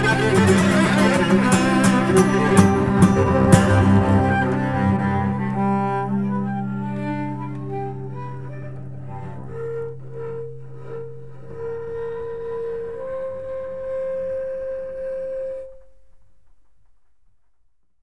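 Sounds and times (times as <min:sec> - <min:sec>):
solo cello playing: 0:00.0 - 0:14.4
low drone: 0:00.0 - 0:15.4.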